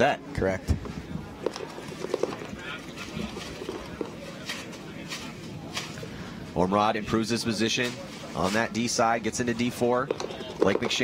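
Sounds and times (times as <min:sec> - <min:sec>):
faint crowd voices: 0:00.0 - 0:11.0.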